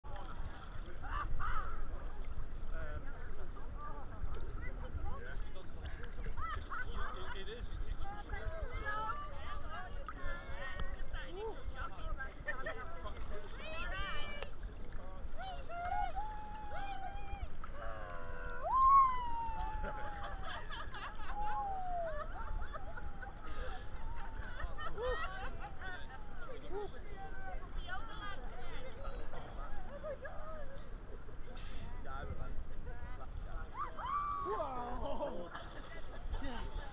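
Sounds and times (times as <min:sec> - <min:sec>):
faint voices of swimmers: 0:00.0 - 0:36.9
sea water sloshing: 0:00.1 - 0:36.9.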